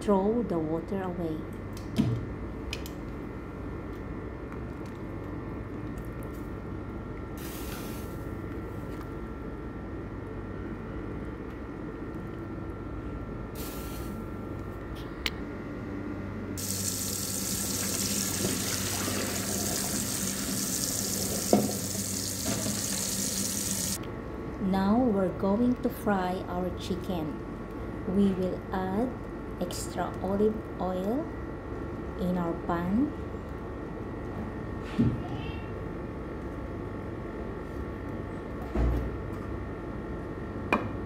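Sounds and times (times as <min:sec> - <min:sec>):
water running into a sink: 0:16.6 - 0:24.0
water simmering in a wok: 0:16.6 - 0:24.0.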